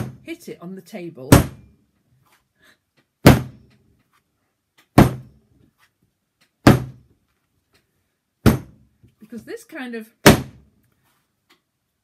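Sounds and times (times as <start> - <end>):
clay slammed onto table thuds: 3.2 - 3.6, 4.9 - 5.4, 6.6 - 7.1, 8.4 - 8.9, 10.2 - 10.6.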